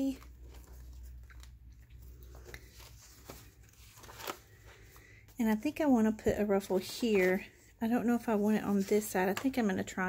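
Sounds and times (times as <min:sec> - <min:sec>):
paper pages rustling: 0:00.0 - 0:07.6.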